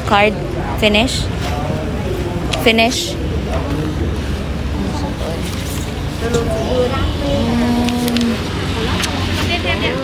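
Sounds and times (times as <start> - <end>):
indistinct background voices: 0.6 - 10.0.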